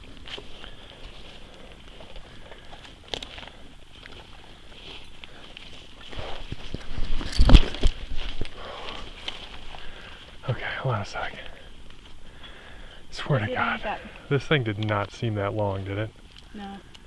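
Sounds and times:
rustling and scraping: 0:00.0 - 0:10.5
footsteps in undergrowth: 0:00.0 - 0:14.4.

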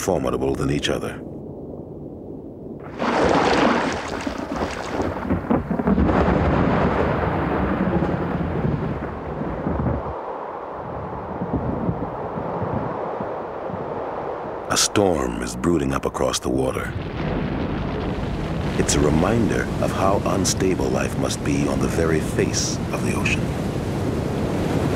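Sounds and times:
thunder crack and rumble: 0:01.4 - 0:14.0, 0:16.8 - 0:24.9.

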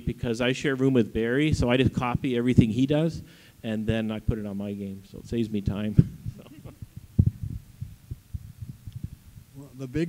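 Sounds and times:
microphone handling thumps: 0:01.5 - 0:04.4, 0:05.2 - 0:09.6.

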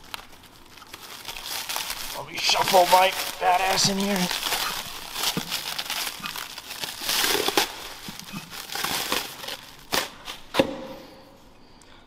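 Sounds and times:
plastic bag crinkling: 0:00.0 - 0:10.5.

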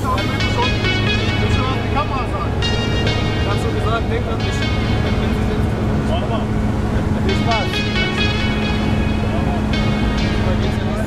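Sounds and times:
music with sung melody: 0:00.0 - 0:06.3, 0:07.2 - 0:11.0
steady low drone: 0:00.0 - 0:11.0.

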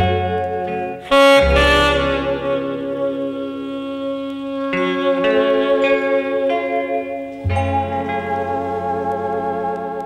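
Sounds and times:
bass line: 0:00.0 - 0:06.1
saxophone music: 0:00.0 - 0:10.0.

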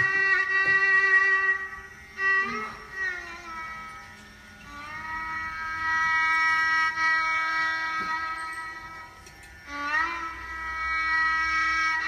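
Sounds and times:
instrumental music long note: 0:00.0 - 0:12.0.

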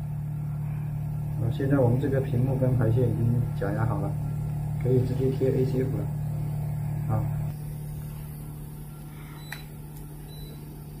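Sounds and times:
machine electrical hum: 0:00.0 - 0:11.0.

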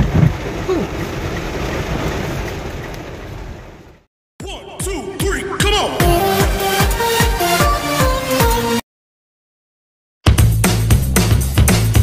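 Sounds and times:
heavy rain on car roof: 0:00.0 - 0:04.1.

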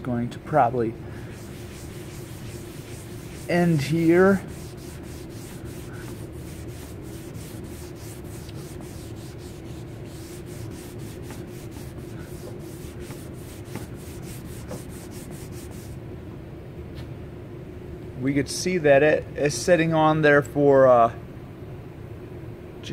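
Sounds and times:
steady low hum: 0:00.0 - 0:22.9
rag scrubbing car paint: 0:01.1 - 0:16.0.

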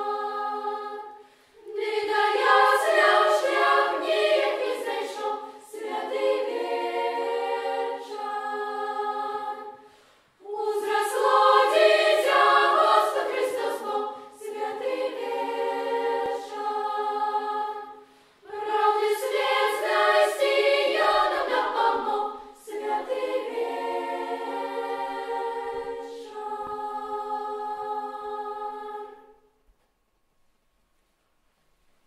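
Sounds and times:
children's choir singing: 0:00.0 - 0:29.5.

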